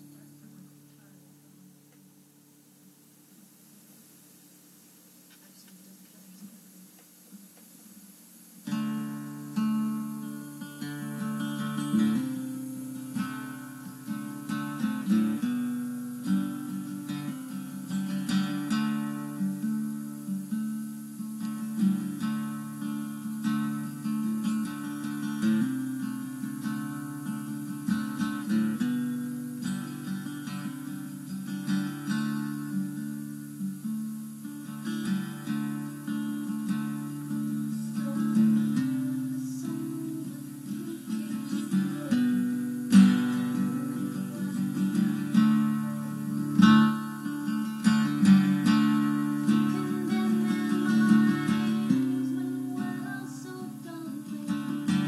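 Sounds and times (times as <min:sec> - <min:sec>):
acoustic guitar strumming: 0:00.0 - 0:05.6, 0:06.8 - 0:55.0.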